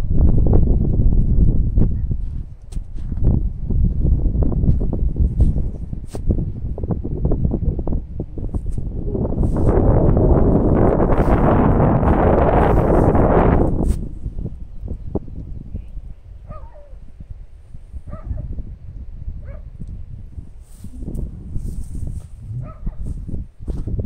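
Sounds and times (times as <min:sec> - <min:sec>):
wind buffeting microphone: 0:00.0 - 0:24.0
dog barking: 0:16.5 - 0:17.0, 0:18.1 - 0:18.5, 0:19.4 - 0:19.7, 0:22.6 - 0:23.2.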